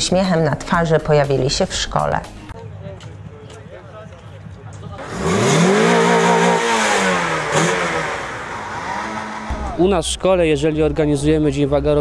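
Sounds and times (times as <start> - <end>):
car engine revving: 5.0 - 9.8.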